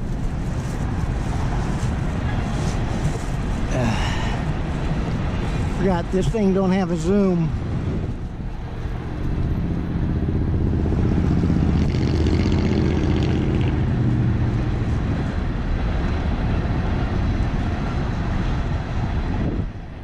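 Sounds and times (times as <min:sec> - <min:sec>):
steady traffic rumble: 0:00.0 - 0:20.0
vehicle engine passing close: 0:07.6 - 0:19.6.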